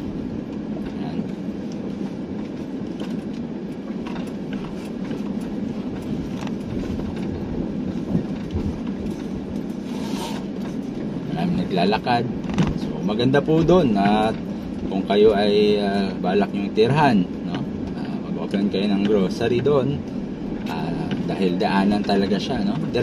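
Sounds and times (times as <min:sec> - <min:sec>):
car engine and road noise: 0:00.0 - 0:23.0.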